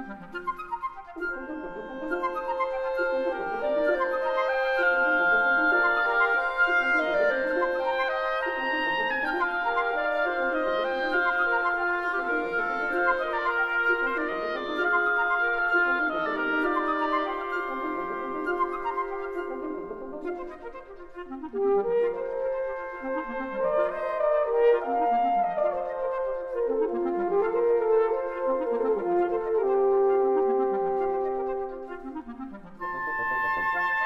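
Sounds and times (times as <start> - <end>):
wind quintet playing classical piece: 0.0 - 34.0.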